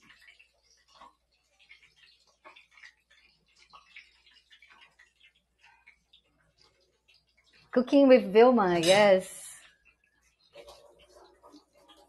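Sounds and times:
bread frying in oil: 0:00.0 - 0:12.0.

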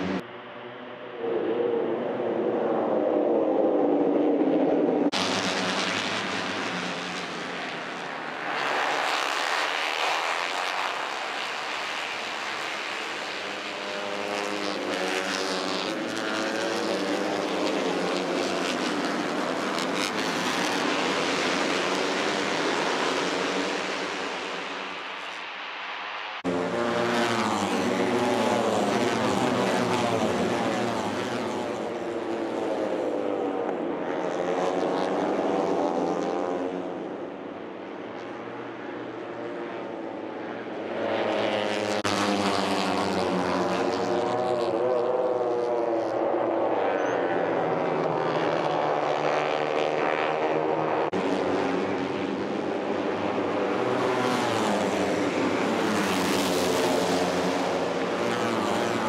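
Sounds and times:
racing motorcycles passing: 0:00.0 - 0:25.5, 0:26.4 - 0:59.0.

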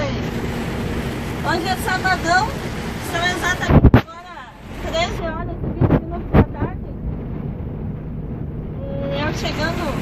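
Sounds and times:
rain hissing: 0:00.0 - 0:03.9
truck engine drone: 0:00.0 - 0:10.0
wet road noise: 0:00.0 - 0:10.0.

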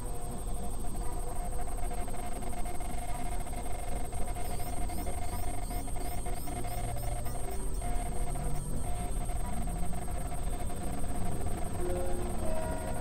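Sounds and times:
steady mid-pitched tone: 0:02.7 - 0:13.0.

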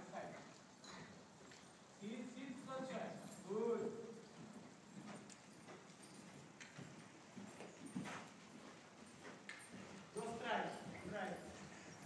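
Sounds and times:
horse hoofbeats on sand: 0:00.1 - 0:12.0.

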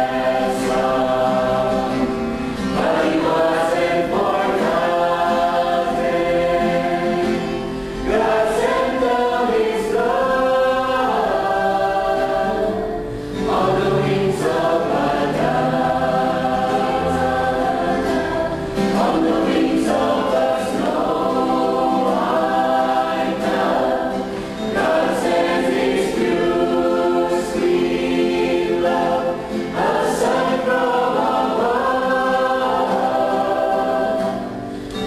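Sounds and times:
church choir singing: 0:00.0 - 0:35.0.

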